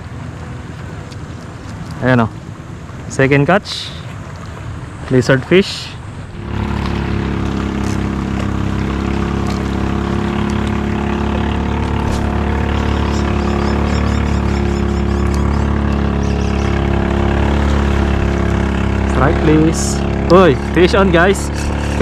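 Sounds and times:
engine running steadily: 0.0 - 22.0.

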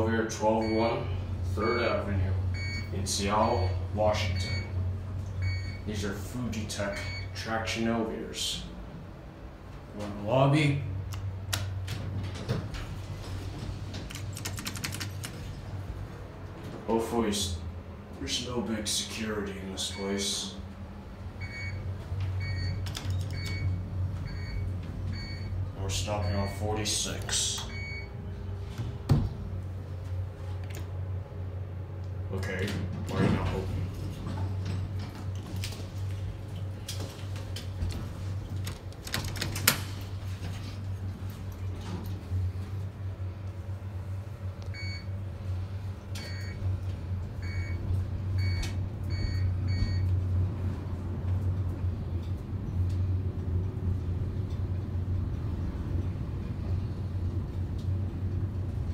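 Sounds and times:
elevator low hum: 0.0 - 58.9.

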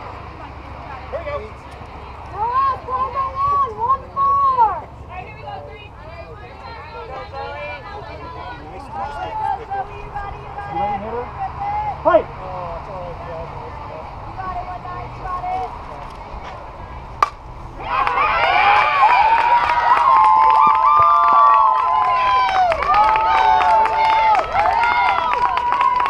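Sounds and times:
voices chattering: 0.0 - 19.7
crowd cheering and yelling: 1.2 - 12.3, 17.7 - 26.0
bat hitting softball: 17.2 - 18.3.

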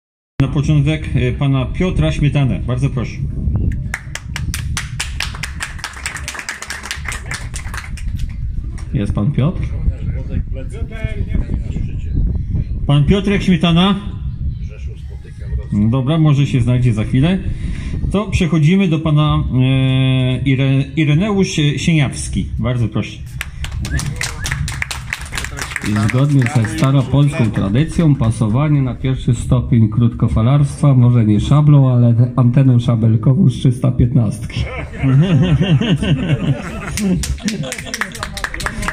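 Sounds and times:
small group applauding: 3.7 - 8.9, 23.4 - 28.4, 36.8 - 38.9
voices talking: 25.3 - 29.8.

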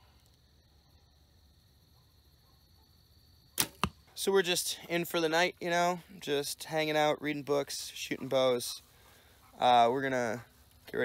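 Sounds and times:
arrow striking target: 3.6 - 4.0
bowstring release snap: 3.6 - 4.0.

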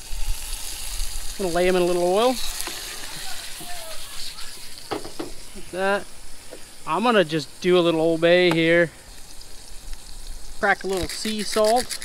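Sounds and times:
fish sizzling in hot oil: 0.0 - 12.0.

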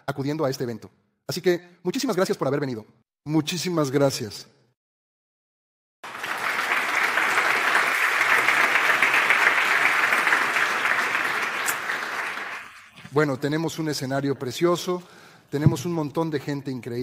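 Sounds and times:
large audience applauding: 6.0 - 12.9.

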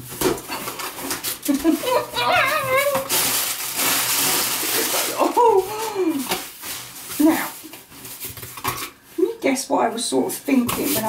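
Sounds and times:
plastic packaging rustling: 0.0 - 9.5, 10.3 - 11.0.

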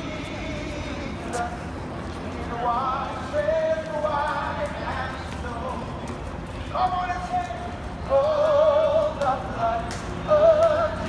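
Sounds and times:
crowd and street noise: 0.0 - 11.0.

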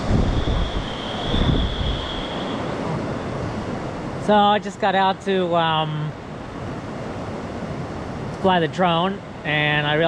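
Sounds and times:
wind buffeting microphone: 0.0 - 4.2
faint steady high tone: 0.3 - 2.8.

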